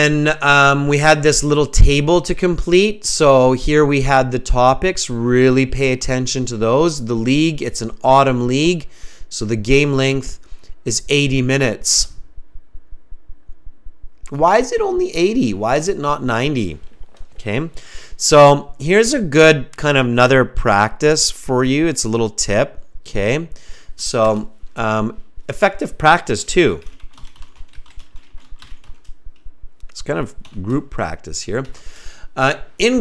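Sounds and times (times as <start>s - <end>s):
fast-pulsing low rumble: 0.1s - 31.4s
typing on computer keyboard: 26.8s - 29.1s, 30.4s - 30.7s.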